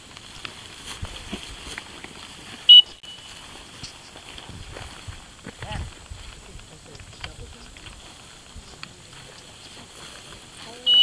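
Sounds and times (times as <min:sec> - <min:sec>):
dog whistle blast: 0:02.7 - 0:03.3.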